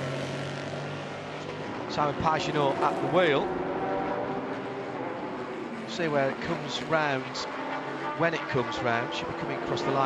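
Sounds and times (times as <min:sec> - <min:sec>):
race car engine droning: 0:00.0 - 0:10.0.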